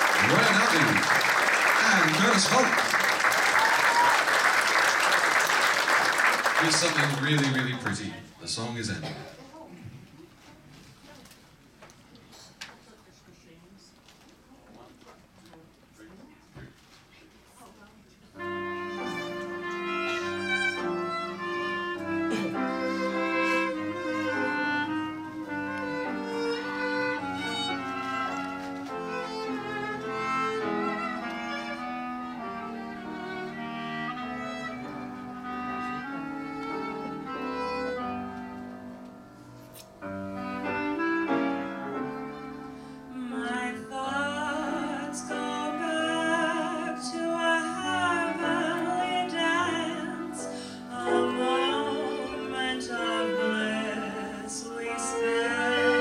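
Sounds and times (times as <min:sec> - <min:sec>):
violin melody: 0:00.0 - 0:01.0, 0:01.8 - 0:03.0, 0:18.4 - 0:56.0
clarinet melody: 0:18.4 - 0:43.7, 0:44.3 - 0:56.0
jazz band playing slow number: 0:18.4 - 0:56.0
woman singing: 0:43.1 - 0:56.0.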